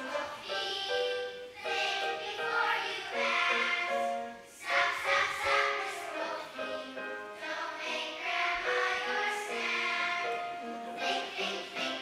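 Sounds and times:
children singing in a choir: 0.0 - 12.0.

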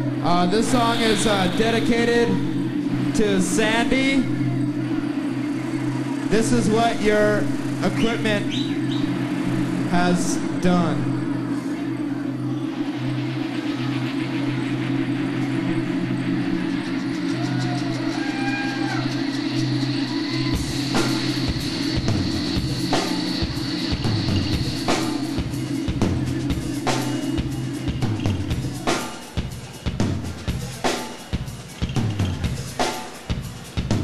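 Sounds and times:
bass and keyboard drone: 0.0 - 30.9
drums and cymbals beat: 0.0 - 34.0.

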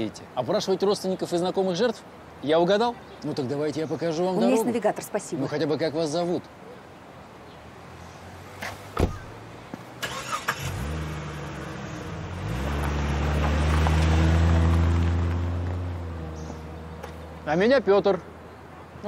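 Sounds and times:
car door shutting: 8.6 - 9.4
car engine revving and pulling away: 10.0 - 17.6.

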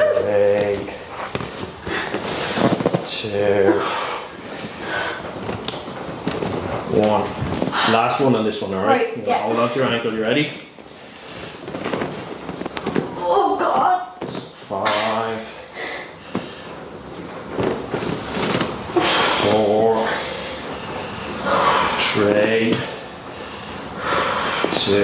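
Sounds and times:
breathy exhalations: 3.7 - 5.3, 22.8 - 24.8.

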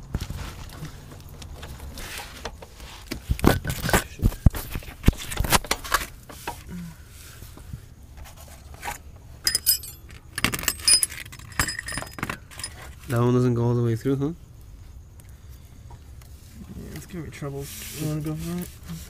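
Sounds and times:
metal tools clinking and rattling: 9.4 - 13.2.

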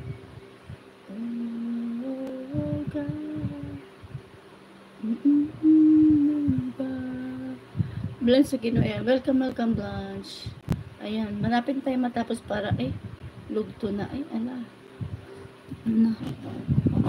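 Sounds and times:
woman humming: 1.0 - 4.3, 5.0 - 7.7, 15.8 - 17.0.

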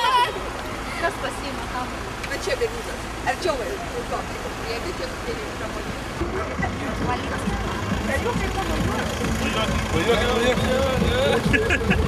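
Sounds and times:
car road and engine noise: 0.0 - 12.0
voices talking: 0.0 - 12.0.

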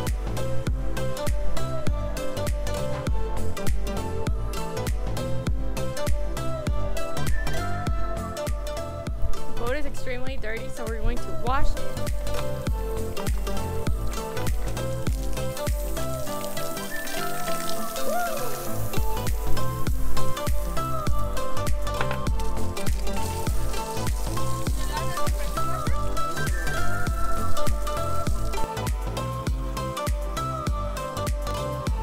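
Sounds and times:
background music with steady beat: 0.0 - 32.0.

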